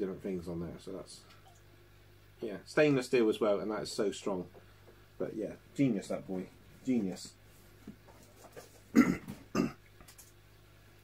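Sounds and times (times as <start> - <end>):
man coughing: 8.9 - 9.8.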